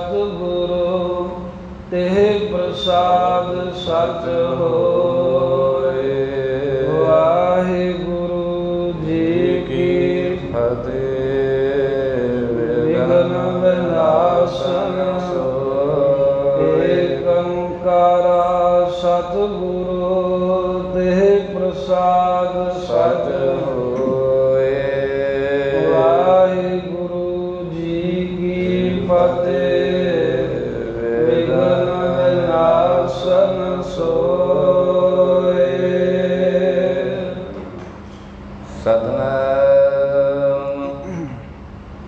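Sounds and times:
man chanting devotional verses: 0:00.0 - 0:37.8, 0:38.7 - 0:41.4
steady held drone: 0:00.0 - 0:42.0.

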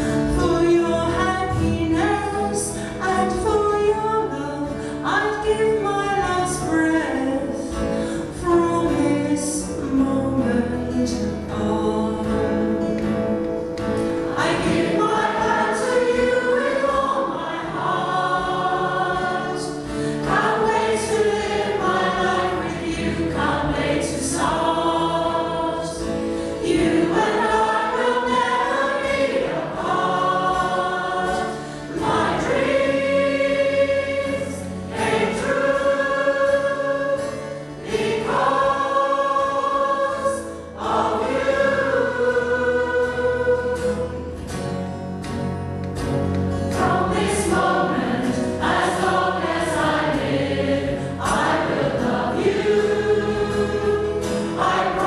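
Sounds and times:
mixed choir singing ballad: 0:00.0 - 0:44.8, 0:46.6 - 0:55.0
acoustic guitar accompaniment: 0:00.0 - 0:55.0.

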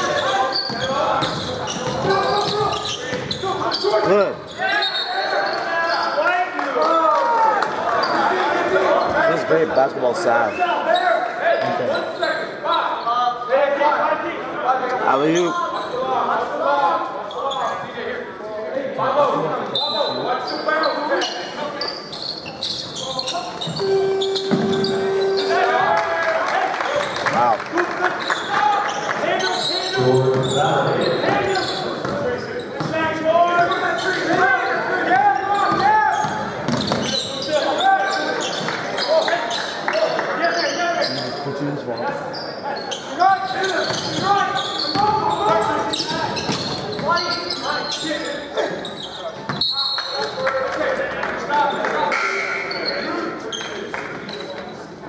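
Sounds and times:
spectators chatting: 0:00.0 - 0:07.0, 0:07.6 - 0:55.0.

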